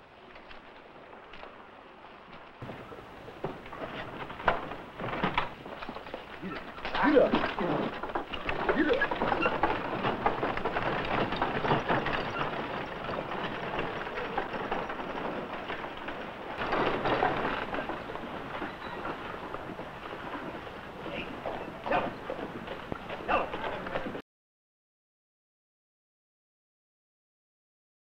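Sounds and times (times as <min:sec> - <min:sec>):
old film soundtrack noise: 0:00.0 - 0:24.2
wagon rattling: 0:02.4 - 0:24.2
hoofbeats: 0:02.6 - 0:24.2
faint voices: 0:06.3 - 0:10.8, 0:17.6 - 0:24.2.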